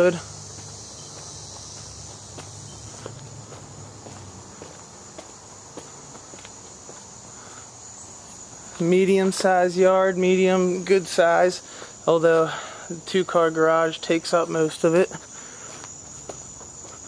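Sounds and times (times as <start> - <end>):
footsteps on pavement: 0.0 - 7.4, 8.1 - 9.9, 15.1 - 17.0
insects chirping: 0.0 - 17.0.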